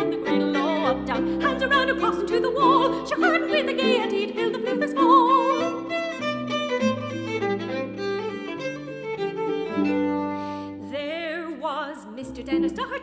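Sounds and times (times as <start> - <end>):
violin melody with vibrato: 0.0 - 11.5.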